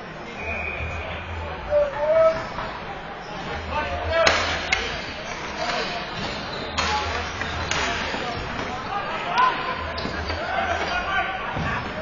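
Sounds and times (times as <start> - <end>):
people calling and shouting: 0.0 - 12.0.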